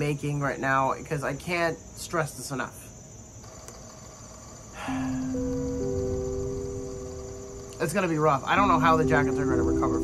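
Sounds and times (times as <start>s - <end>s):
crickets chirring: 0.0s - 10.0s
held musical tones: 4.8s - 10.0s.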